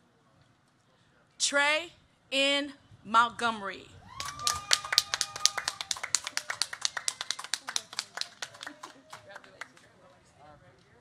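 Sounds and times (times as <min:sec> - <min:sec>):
brisk hand clapping: 0:04.2 - 0:09.2.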